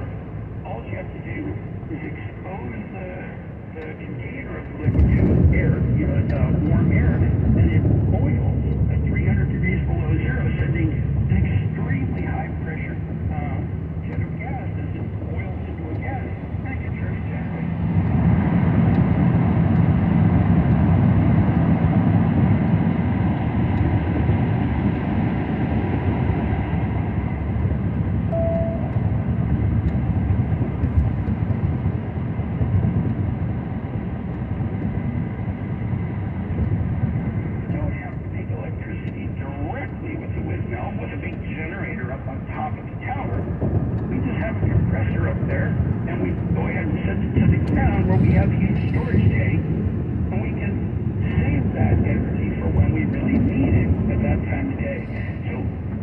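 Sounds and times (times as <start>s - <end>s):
car road and tyre noise: 0.0s - 56.0s
person talking: 44.1s - 49.6s.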